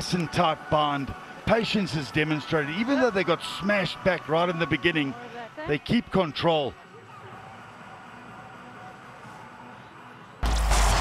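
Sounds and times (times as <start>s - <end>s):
stadium ambience: 0.0s - 11.0s
transition sting with deep bass: 10.4s - 11.0s.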